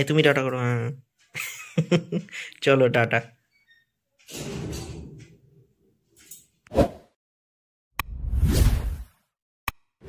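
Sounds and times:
whoosh: 0:08.0 - 0:09.1.

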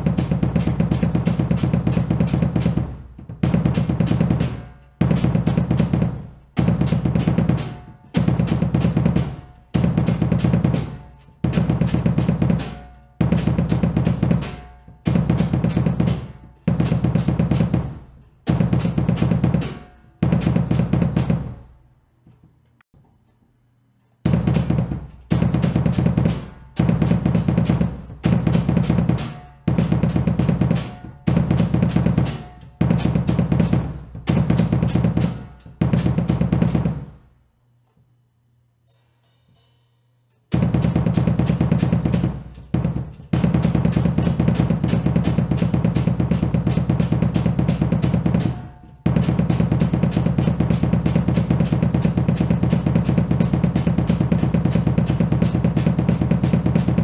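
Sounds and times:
double bass drum pedals on kick drum: 0:00.0 - 0:22.6, 0:24.2 - 0:37.4, 0:40.5 - 0:57.0.

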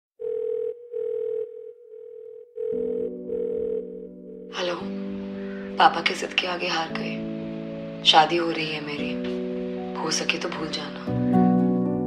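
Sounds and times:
telephone ringing tone: 0:00.2 - 0:04.7.

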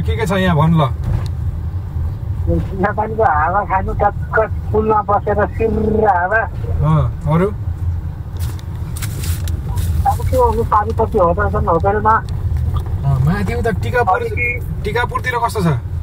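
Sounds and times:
car engine and tyres rumbling: 0:00.0 - 0:16.0
people talking: 0:02.5 - 0:07.6, 0:09.7 - 0:12.2, 0:13.0 - 0:15.8.

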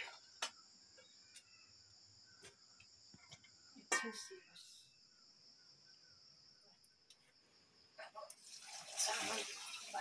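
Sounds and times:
crickets chirring: 0:00.0 - 0:10.0
water splashing into steel bowl: 0:08.3 - 0:10.0.

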